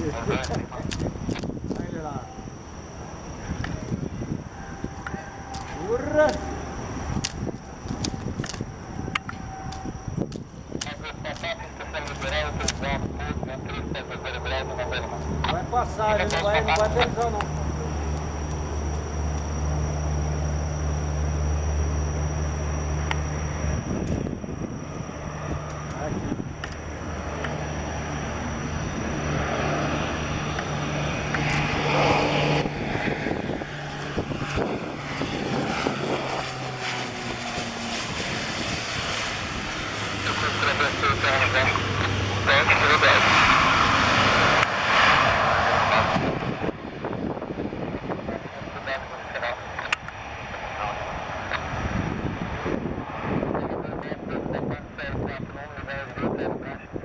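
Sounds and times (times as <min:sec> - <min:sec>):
turboprop aircraft landing: 0:00.0 - 0:57.0.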